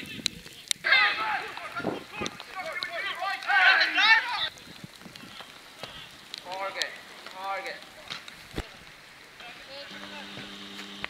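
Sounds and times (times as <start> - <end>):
distant players shouting: 0.8 - 4.6
steady background hiss: 0.8 - 11.0.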